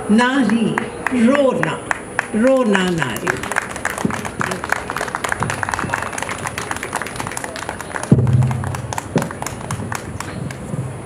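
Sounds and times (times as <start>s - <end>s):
audience applauding: 1.8s - 10.8s
loud low thump: 8.1s - 9.4s.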